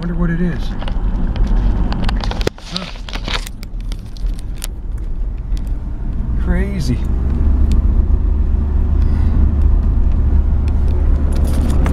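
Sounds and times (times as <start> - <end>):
truck engine rumble from inside cab: 0.0 - 11.9.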